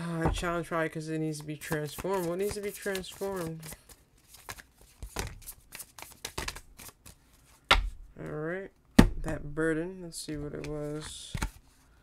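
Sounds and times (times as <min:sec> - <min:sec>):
cards being shuffled: 0:01.3 - 0:07.7, 0:10.2 - 0:11.8.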